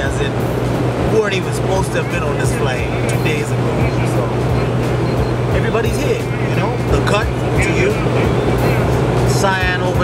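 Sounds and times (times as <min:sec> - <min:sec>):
airliner cabin drone: 0:00.0 - 0:10.0
man's voice: 0:01.1 - 0:04.5, 0:05.5 - 0:08.4, 0:09.2 - 0:10.0.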